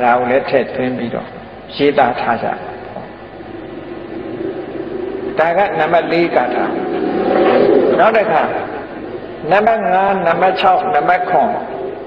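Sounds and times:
faint low hum: 0.0 - 12.0
recording hiss: 0.0 - 12.0.

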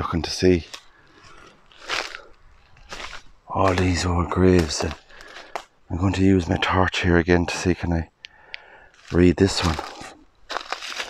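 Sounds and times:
footsteps crunching on dry leaves: 0.5 - 5.8, 8.8 - 11.0.

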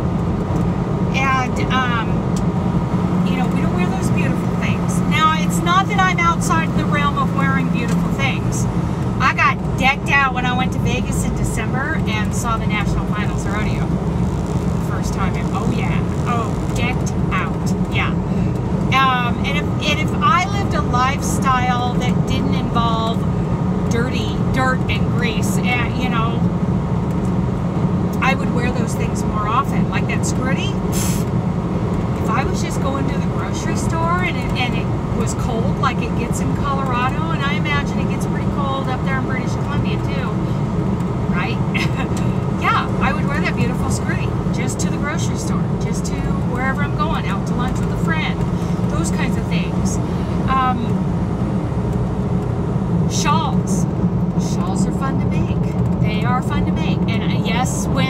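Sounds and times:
truck engine and road drone: 0.0 - 58.0
woman talking: 1.1 - 2.3, 3.2 - 13.9, 14.8 - 23.3, 23.9 - 26.5, 28.2 - 30.9, 32.2 - 40.4, 41.3 - 51.0, 53.1 - 58.0.

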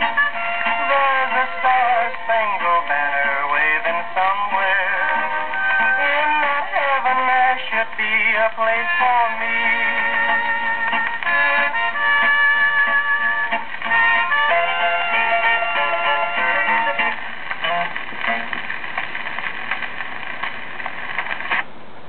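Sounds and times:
country guitar and harmonica: 0.0 - 18.8
record surface hiss: 0.0 - 22.0.

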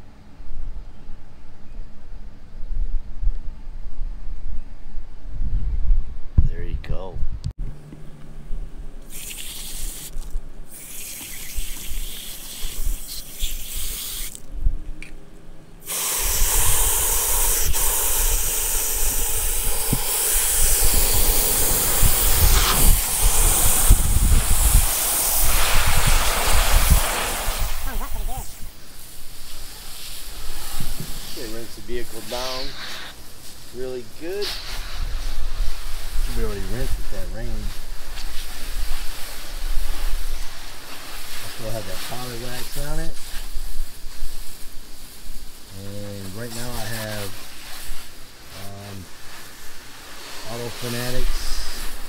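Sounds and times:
hose spraying water into bucket: 9.0 - 14.5, 15.8 - 52.0.

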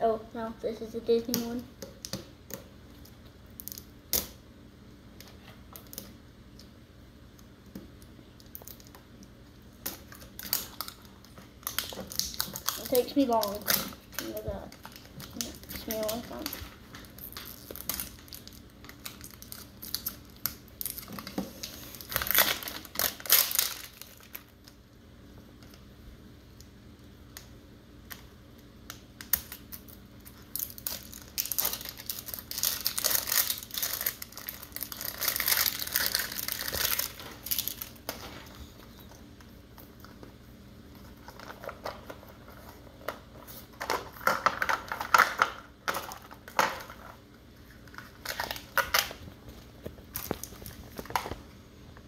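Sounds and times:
plastic wrapping crinkling: 8.4 - 24.8, 29.2 - 51.5.

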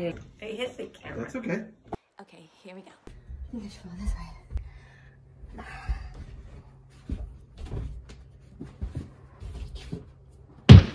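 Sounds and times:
thumps on carpeted stairs: 7.0 - 9.6.

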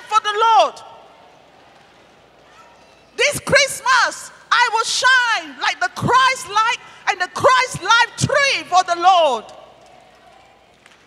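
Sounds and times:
voice echoing through speakers: 0.0 - 1.1, 3.2 - 9.8.

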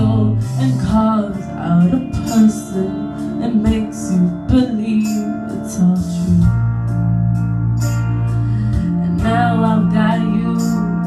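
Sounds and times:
woman singing with vibrato: 0.0 - 6.5, 9.0 - 11.0
instrumental accompaniment: 0.0 - 11.0.

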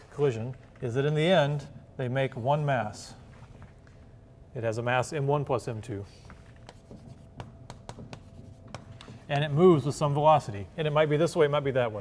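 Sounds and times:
chalk scratching on blackboard: 6.2 - 9.2.

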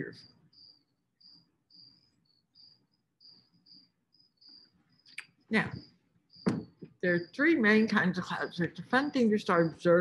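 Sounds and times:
faint insect chirping: 0.0 - 10.0
person speaking: 5.5 - 5.8, 6.5 - 10.0.

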